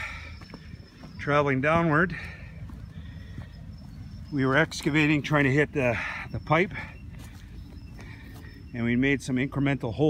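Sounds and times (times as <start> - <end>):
low background rumble: 0.0 - 9.9.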